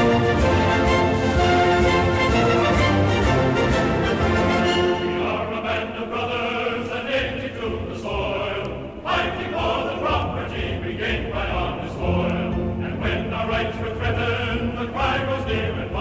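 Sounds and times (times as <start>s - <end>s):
choir singing: 0.0s - 16.0s
orchestral music: 0.0s - 16.0s.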